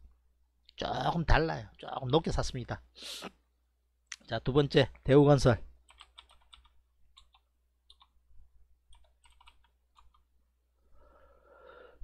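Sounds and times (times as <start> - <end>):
computer keyboard typing: 5.8 - 8.2, 8.9 - 10.3.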